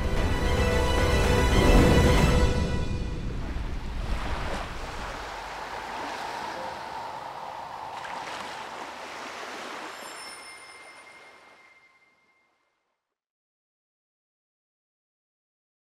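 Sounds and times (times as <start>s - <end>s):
sea waves washing: 1.0s - 12.3s
faint high ringing tones: 9.5s - 12.8s.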